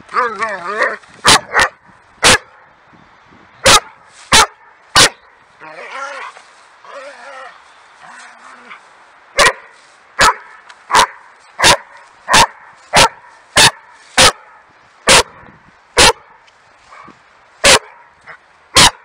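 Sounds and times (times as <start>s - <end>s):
dog barking: 0.8s - 2.5s, 3.6s - 5.2s, 9.4s - 15.4s, 16.0s - 18.1s, 18.8s - 19.0s.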